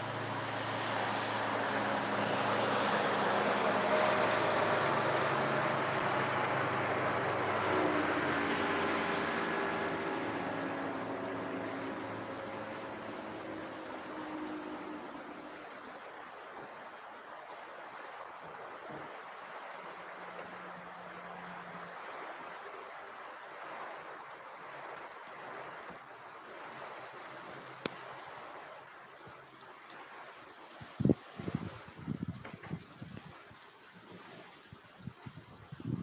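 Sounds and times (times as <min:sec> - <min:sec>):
distant engine rumble: 0:00.0 - 0:35.9.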